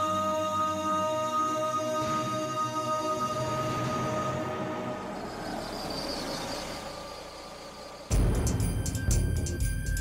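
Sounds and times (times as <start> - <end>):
background music sustained notes: 0.0 - 10.0
car approaching on pavement: 3.7 - 8.5.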